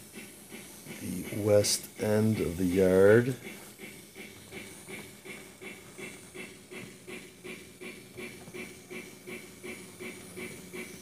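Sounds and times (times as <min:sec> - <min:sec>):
electronic steam locomotive chuffing: 0:00.0 - 0:11.0.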